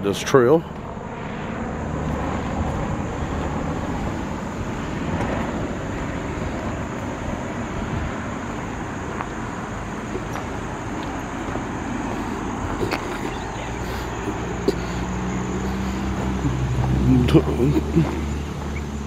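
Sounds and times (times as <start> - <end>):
distant engine rumble: 0.0 - 19.0.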